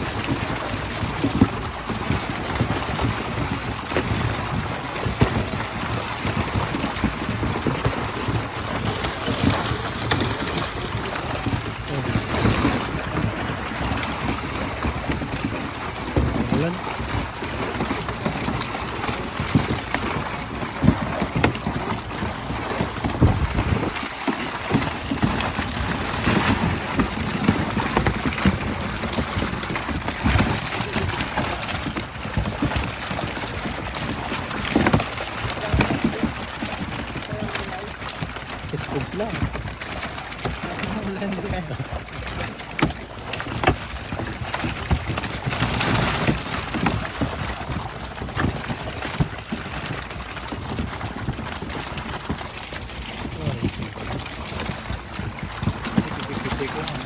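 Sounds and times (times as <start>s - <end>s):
fish thrashing in water: 0.0s - 57.0s
small water splashes: 0.0s - 57.0s.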